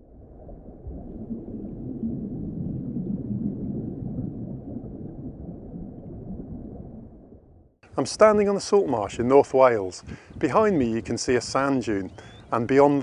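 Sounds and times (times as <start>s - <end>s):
muffled underwater rumbling: 0.0s - 9.3s.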